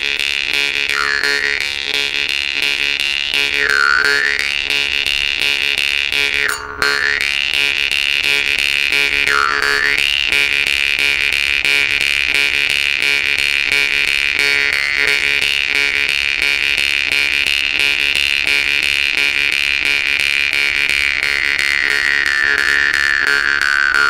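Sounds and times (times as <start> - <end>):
jaw harp plucking with buzzing drone: 0.0 - 24.0.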